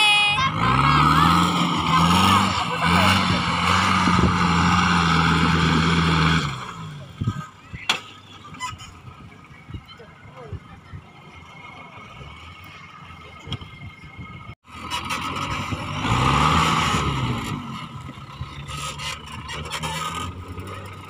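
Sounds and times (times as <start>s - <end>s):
off-road engine revving hard: 0.4s - 7.6s, 11.3s - 21.0s.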